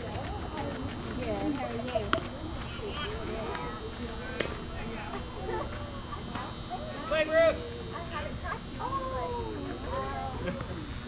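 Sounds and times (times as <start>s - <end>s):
distant voices calling: 0.0s - 11.0s.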